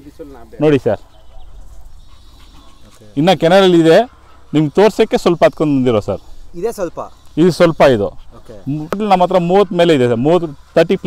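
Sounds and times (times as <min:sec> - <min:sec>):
puppies whining: 0:00.8 - 0:11.0.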